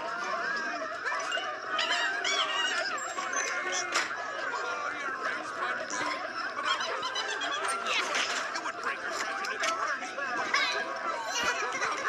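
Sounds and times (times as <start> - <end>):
overlapping cartoon voices and sounds: 0.0 - 12.0.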